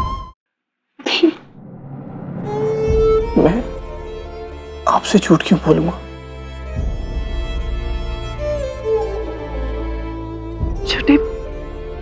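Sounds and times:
drama music: 0:02.2 - 0:12.0.

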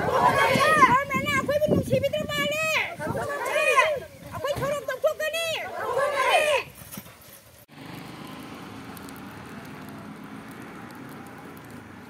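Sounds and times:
protesters chanting: 0:00.0 - 0:06.7
outdoor background noise: 0:00.0 - 0:12.0.

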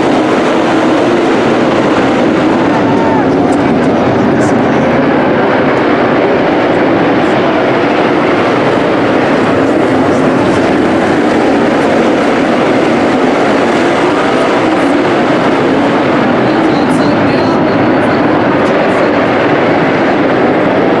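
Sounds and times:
race car engines roaring: 0:00.0 - 0:21.0.

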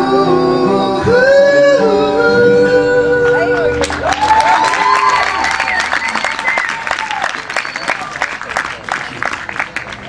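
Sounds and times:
man singing a high note: 0:00.0 - 0:03.8
acoustic guitar: 0:00.0 - 0:04.4.

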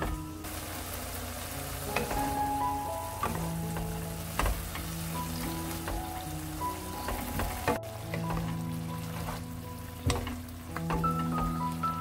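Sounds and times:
food sizzling in a frying pan: 0:00.3 - 0:12.0
wooden spatula knocking pan: 0:01.4 - 0:12.0.

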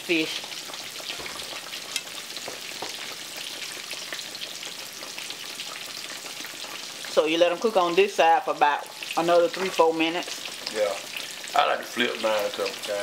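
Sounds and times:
fish deep-frying in hot oil: 0:00.0 - 0:13.0.

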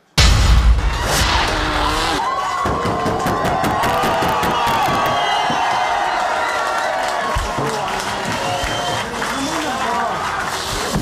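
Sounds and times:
crowd cheering and shouting: 0:00.7 - 0:11.0.

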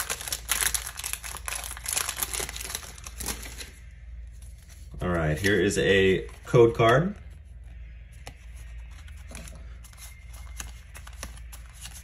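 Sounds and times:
foil wrapper crinkling: 0:00.0 - 0:03.8.

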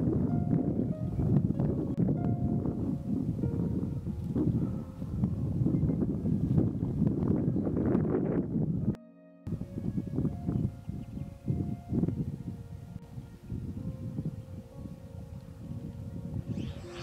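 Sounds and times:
faint steady tones: 0:00.0 - 0:08.2, 0:08.8 - 0:17.0
wind buffeting microphone: 0:00.0 - 0:17.0.

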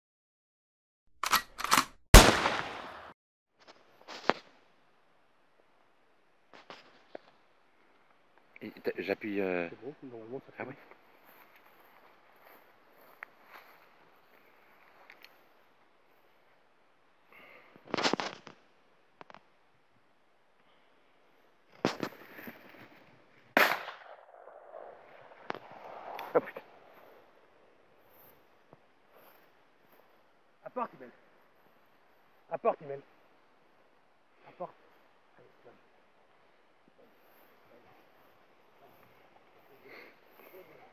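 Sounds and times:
short sharp cracks: 0:01.2 - 0:03.1, 0:23.6 - 0:27.4
shotgun blast: 0:02.1 - 0:03.1, 0:23.6 - 0:26.9.

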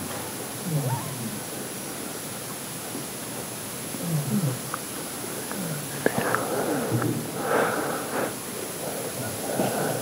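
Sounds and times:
room hiss: 0:00.0 - 0:10.0
low murmured voices: 0:03.9 - 0:10.0.

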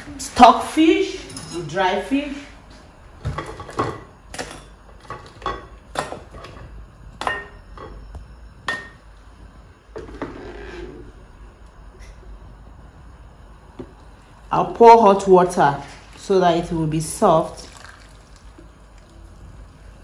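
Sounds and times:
crockery knocking and clinking: 0:03.2 - 0:09.0.

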